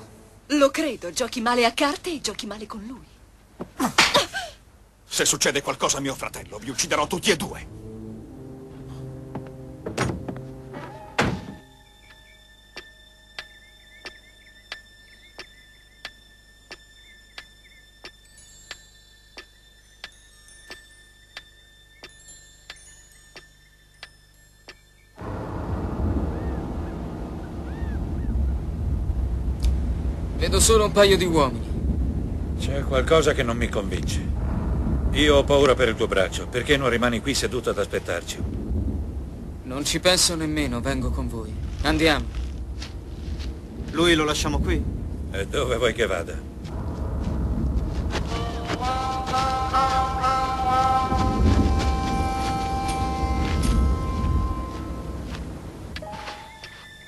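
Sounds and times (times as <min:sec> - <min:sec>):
low wind-like rumble: 0:25.2 - 0:56.0.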